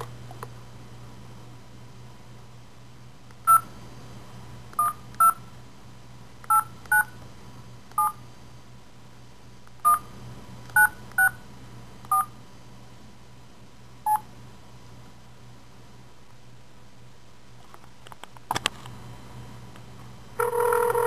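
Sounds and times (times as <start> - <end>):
telephone keypad tones: 3.5 - 3.7, 4.8 - 5.4, 20.4 - 21.0.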